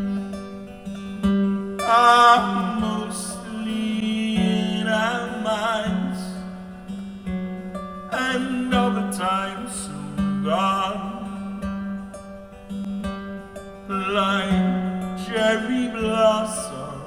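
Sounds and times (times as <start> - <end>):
acoustic guitar: 0.0 - 17.0
man singing: 1.1 - 6.9, 8.0 - 12.1, 13.8 - 17.0.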